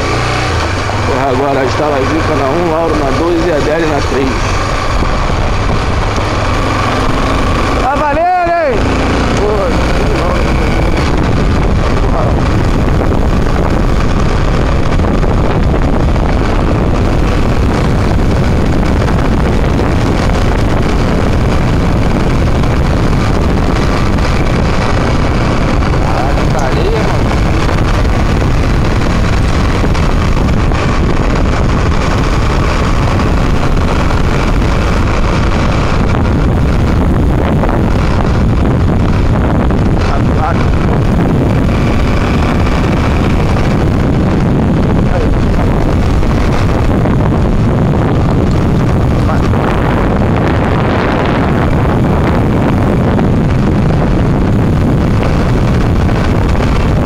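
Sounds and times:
motor vehicle rumble: 0.0s - 57.0s
wind buffeting microphone: 0.0s - 57.0s.

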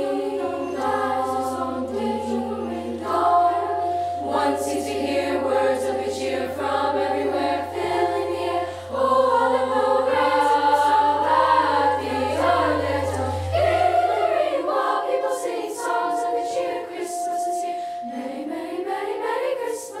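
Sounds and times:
girls' choir singing: 0.0s - 20.0s.

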